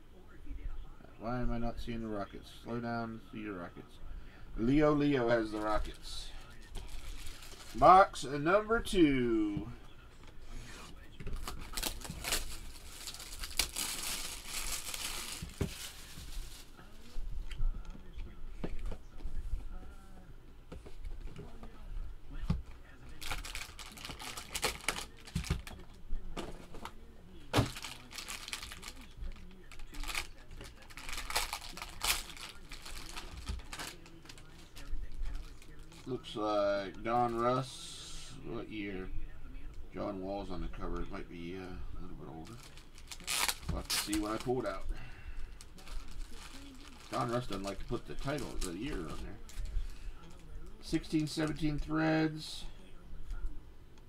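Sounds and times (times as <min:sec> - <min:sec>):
cellophane wrap tearing and crinkling: 0:06.7 - 0:07.8, 0:11.4 - 0:16.7, 0:23.2 - 0:25.8, 0:27.6 - 0:36.1, 0:42.4 - 0:44.6, 0:45.6 - 0:49.6.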